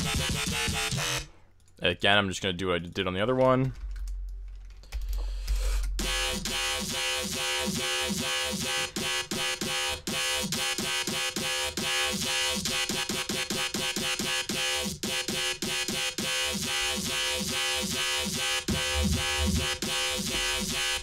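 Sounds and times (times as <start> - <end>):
synthesized bass notes with pitch sweep: 5.5 - 21.0.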